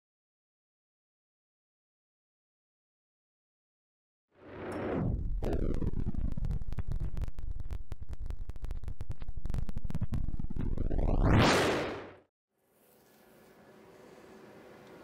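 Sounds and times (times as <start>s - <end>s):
distorted radio signal crackling: 5.4s - 12.0s.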